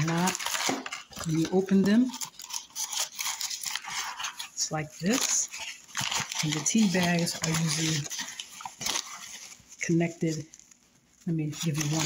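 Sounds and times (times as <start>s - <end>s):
paper crinkling and rustling: 0.0s - 12.0s.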